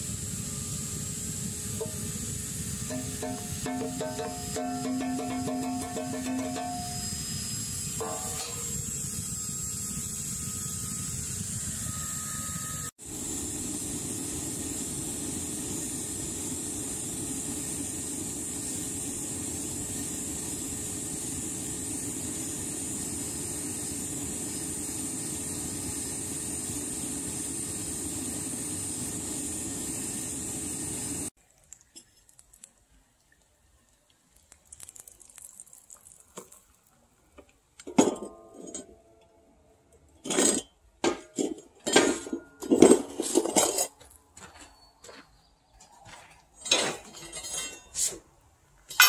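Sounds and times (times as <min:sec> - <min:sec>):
furnace burner hissing: 0:00.0 - 0:32.0.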